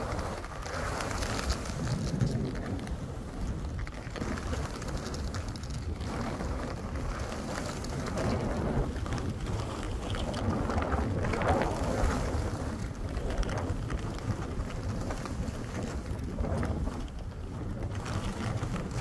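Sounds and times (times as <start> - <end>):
wind buffeting microphone: 0.0 - 19.0
skis hissing through snow: 0.1 - 3.6, 6.1 - 8.8.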